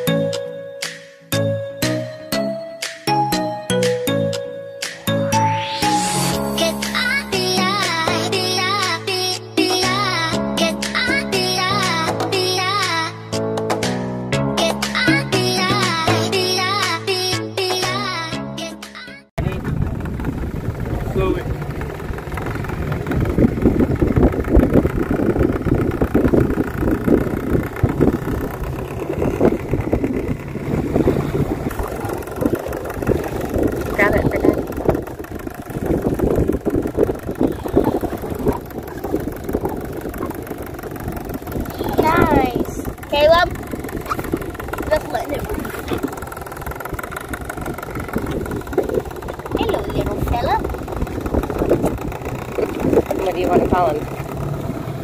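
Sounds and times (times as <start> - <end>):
outboard motor running: 5.0 - 55.0
children's voices: 41.6 - 46.2, 49.5 - 50.7.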